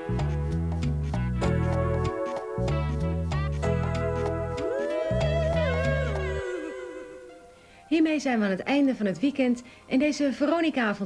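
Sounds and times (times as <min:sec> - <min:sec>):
music with bass and beat: 0:00.0 - 0:06.6
wavering sliding note: 0:03.6 - 0:07.5
woman speaking: 0:07.9 - 0:11.0.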